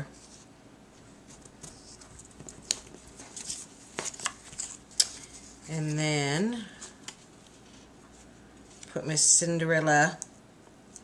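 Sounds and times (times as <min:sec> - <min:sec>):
paper rustling: 0:01.3 - 0:05.6.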